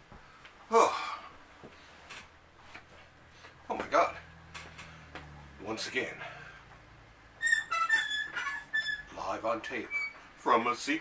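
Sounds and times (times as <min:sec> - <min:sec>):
metal spinner rack squeaking: 0:07.4 - 0:10.2.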